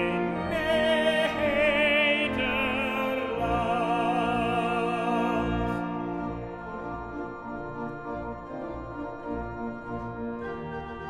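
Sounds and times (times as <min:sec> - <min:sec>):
pipe organ playing chords: 0:00.0 - 0:11.0.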